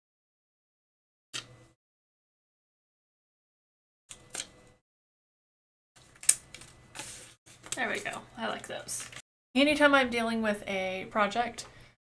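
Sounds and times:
paper scraps rustling: 0:06.0 - 0:08.2.

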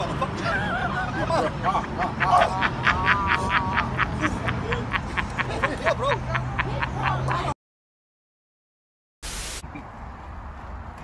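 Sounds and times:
person laughing hard: 0:00.0 - 0:07.5.

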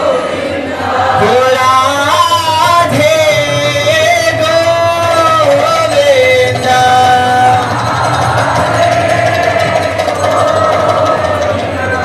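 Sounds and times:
crowd singing: 0:00.0 - 0:12.0.

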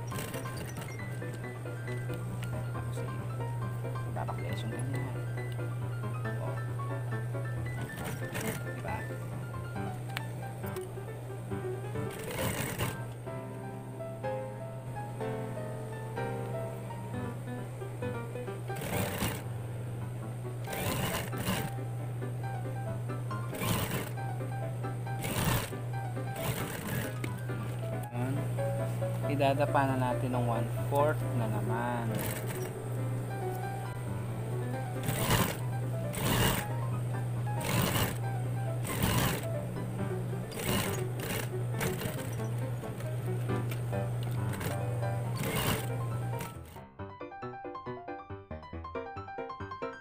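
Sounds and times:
sewing machine stitching: 0:00.0 - 0:13.2, 0:18.4 - 0:19.5, 0:20.6 - 0:28.4, 0:29.2 - 0:46.8
steady low hum: 0:00.0 - 0:46.8
background music: 0:00.0 - 0:50.0.

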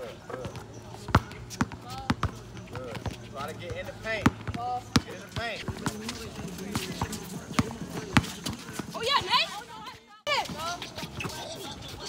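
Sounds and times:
players calling out: 0:00.0 - 0:12.0
basketball bouncing on hard court: 0:00.4 - 0:09.5.

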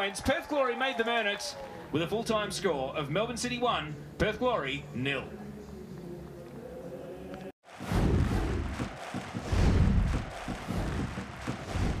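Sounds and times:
stadium background noise: 0:00.0 - 0:12.0
noisy swooshes: 0:07.7 - 0:12.0
deep heavy hits: 0:07.8 - 0:12.0.

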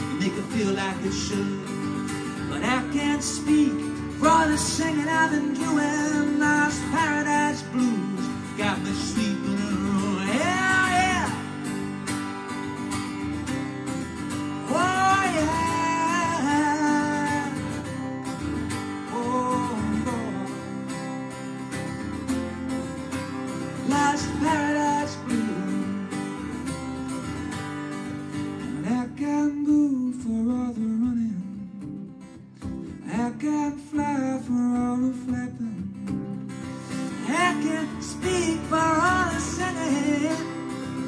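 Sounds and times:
acoustic guitar strumming: 0:00.0 - 0:41.0.

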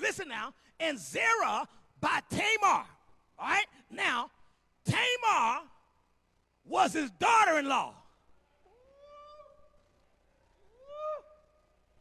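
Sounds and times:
faint voice calling ooh: 0:08.6 - 0:11.7.

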